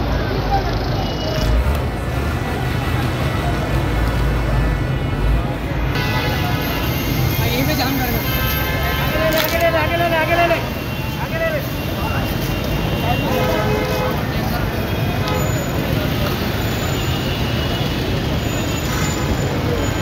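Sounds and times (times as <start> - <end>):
street traffic rumble: 0.0 - 20.0.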